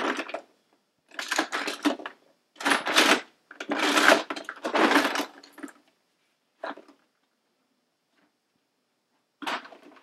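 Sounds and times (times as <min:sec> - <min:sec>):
toys rattling in plastic bin: 0:00.0 - 0:00.5, 0:01.1 - 0:05.8, 0:09.4 - 0:10.0.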